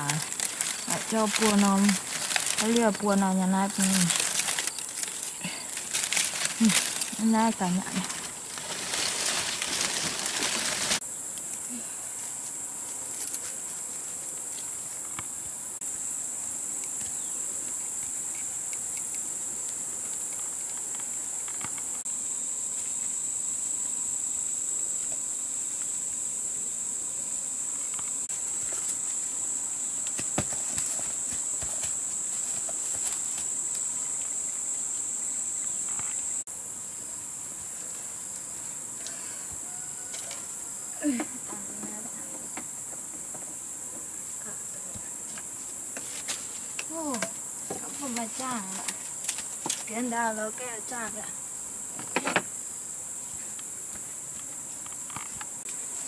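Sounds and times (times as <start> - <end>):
insect chorus drone: 0.0 - 56.0.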